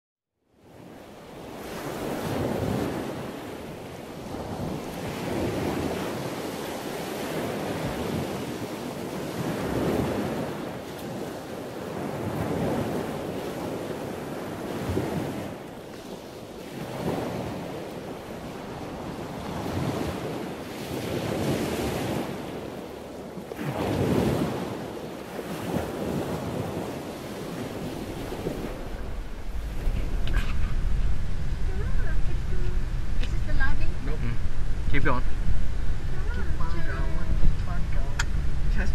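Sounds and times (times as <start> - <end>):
wind buffeting microphone: 0.6 - 38.9.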